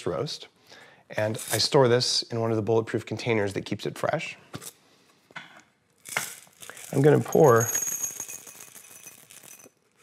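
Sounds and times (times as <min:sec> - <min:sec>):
coffee beans poured into ceramic dish: 0:06.0 - 0:10.0.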